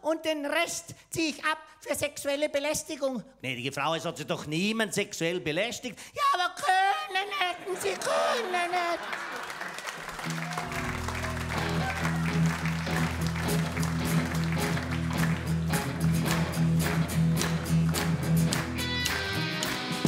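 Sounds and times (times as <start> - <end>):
audience applause: 7.8 - 20.0
live band playing upbeat instrumental: 10.2 - 20.0.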